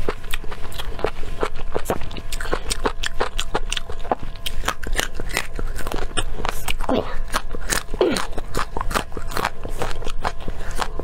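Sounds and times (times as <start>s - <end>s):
crunching bites of chili peppers: 0.0s - 11.0s.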